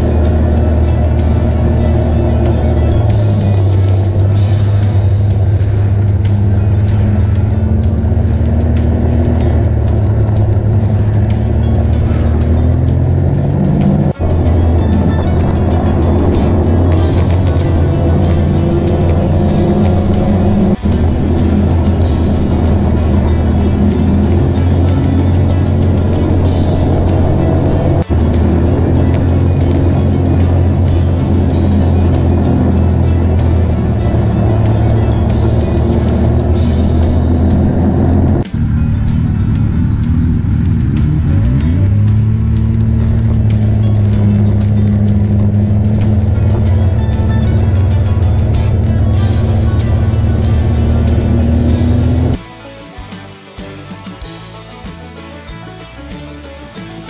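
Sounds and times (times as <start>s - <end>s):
snowmobile engine running: 0.0s - 52.4s.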